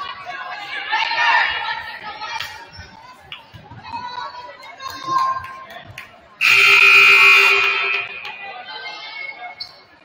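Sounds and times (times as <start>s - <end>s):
scoreboard horn blast: 6.4s - 8.3s.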